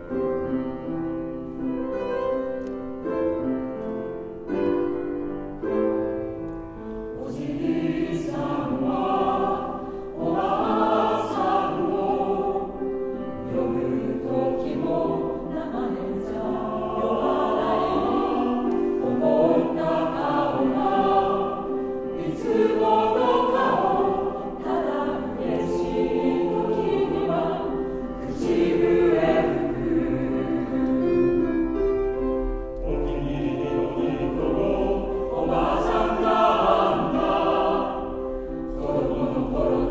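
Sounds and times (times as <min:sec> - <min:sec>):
piano accompaniment: 0:00.0 - 0:39.9
mixed choir singing: 0:07.0 - 0:39.9.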